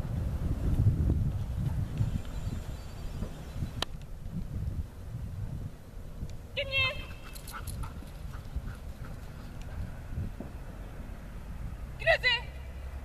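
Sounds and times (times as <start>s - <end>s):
wind rumble on microphone: 0.0s - 12.1s
person shouting command: 6.6s - 7.1s, 12.0s - 12.5s.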